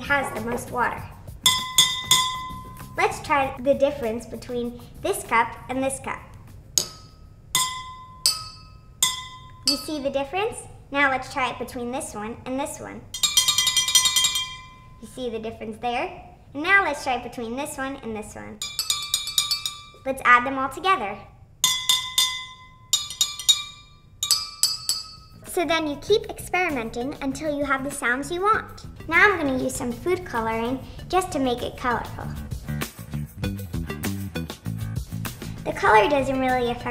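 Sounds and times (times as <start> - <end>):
glasses struck with metal spoon: 1.4 - 3.0, 6.8 - 10.0, 13.2 - 15.0, 18.6 - 20.0, 21.6 - 25.4.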